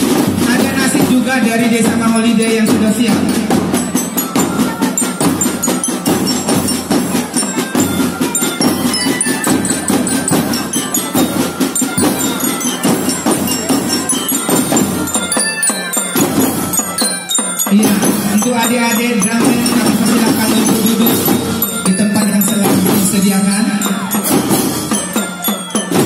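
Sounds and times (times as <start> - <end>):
fast dense drumming: 0.0 - 26.0
high bell-like melody: 0.0 - 26.0.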